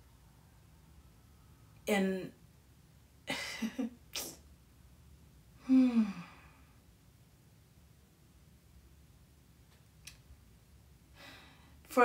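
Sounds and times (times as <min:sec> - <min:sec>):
woman sighing: 0:05.6 - 0:06.7.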